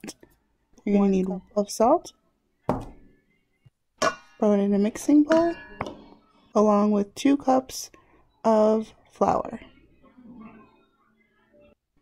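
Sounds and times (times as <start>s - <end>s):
container knocking on hard surface: 2.7s - 3.1s.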